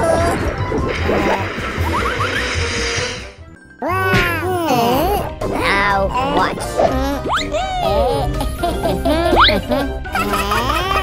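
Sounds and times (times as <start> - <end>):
cooling tower collapsing: 0.0 - 3.4.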